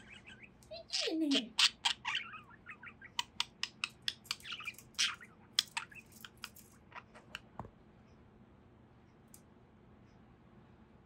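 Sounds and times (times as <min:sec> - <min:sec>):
budgie chirping and clicking: 0:01.5 - 0:07.5.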